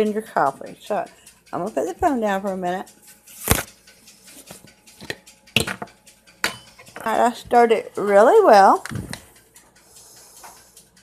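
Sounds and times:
metal spoon clinking on glass: 5.0 - 7.1.

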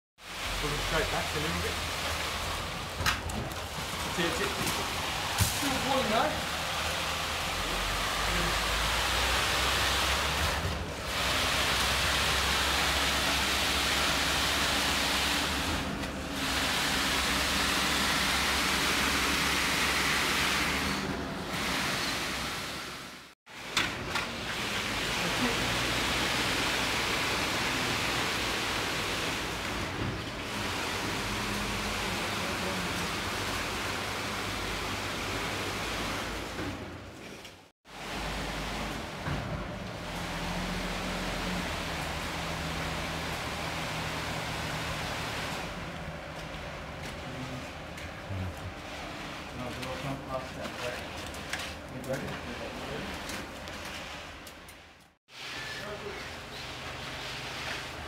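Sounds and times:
concrete pump rushing: 0.3 - 58.0.

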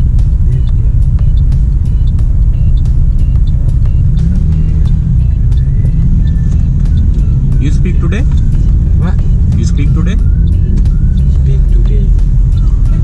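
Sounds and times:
car cabin rumble in traffic: 0.0 - 13.0
faint music with a beat: 0.0 - 13.0.

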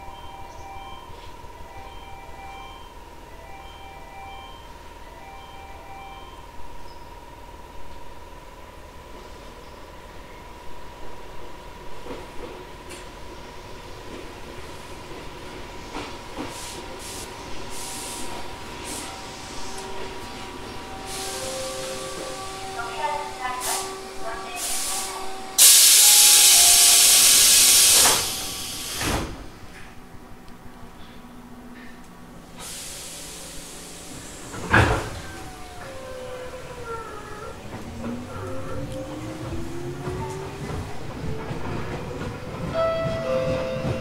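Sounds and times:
compressed air hiss: 24.6 - 29.3, 32.6 - 34.5
train doors closing thump: 27.6 - 30.0, 34.1 - 44.0.

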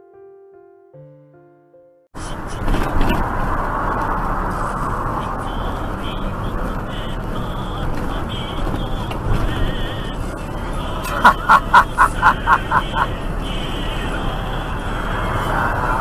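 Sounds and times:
road and engine noise in truck cab: 2.2 - 16.0.

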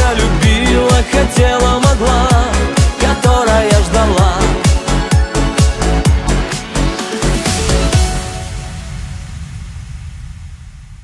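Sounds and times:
low rumbling noise: 7.6 - 11.0.

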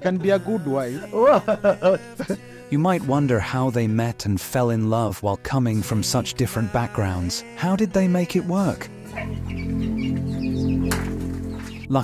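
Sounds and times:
low sustained chord music: 5.7 - 12.0
hens clucking: 9.0 - 11.9.

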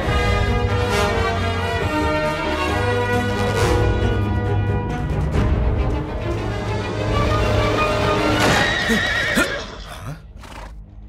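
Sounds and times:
music: 0.0 - 11.0
horse whinnying: 8.4 - 10.8.

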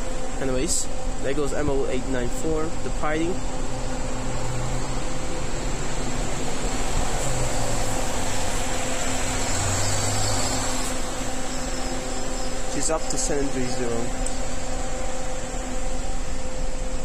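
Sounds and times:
city bus driving past: 2.6 - 17.0.

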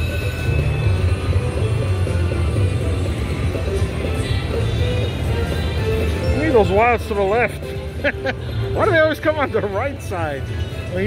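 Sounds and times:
deep hum of casino: 0.0 - 11.0
slot machine bonus music: 0.0 - 11.0.

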